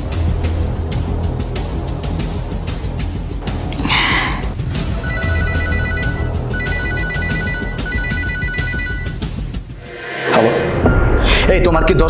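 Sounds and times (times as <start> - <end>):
background music: 0.0 - 12.0
electronic trilling ringtone: 5.0 - 9.3.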